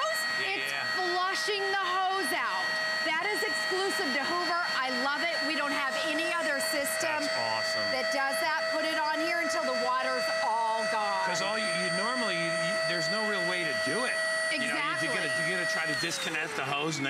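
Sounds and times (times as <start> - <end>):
carpet cleaner whining: 0.0 - 17.0
voices talking: 0.0 - 17.0.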